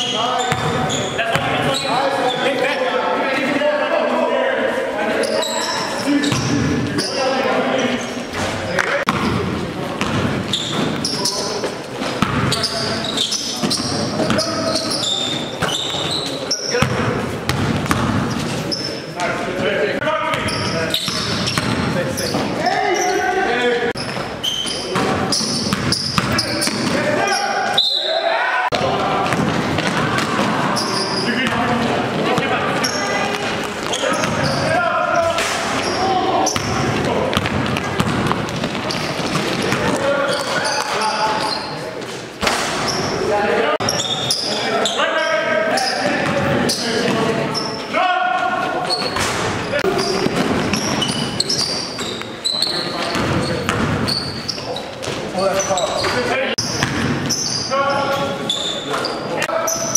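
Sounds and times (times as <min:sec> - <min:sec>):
players' voices: 0:00.0 - 0:59.9
basketball bouncing on court: 0:00.4 - 0:01.7, 0:09.1 - 0:11.2, 0:12.1 - 0:18.5, 0:20.3 - 0:22.5, 0:24.0 - 0:27.0, 0:28.7 - 0:35.9, 0:36.5 - 0:40.7, 0:53.0 - 0:54.4, 0:56.0 - 0:57.5.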